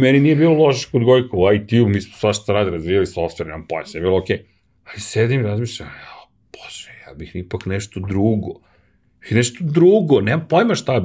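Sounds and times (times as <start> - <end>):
man whispering: 3.6 - 8.6.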